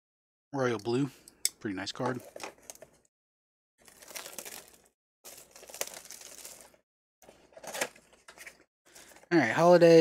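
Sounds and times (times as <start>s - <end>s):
plastic shrink-wrap crinkling and tearing: 3.8s - 6.8s.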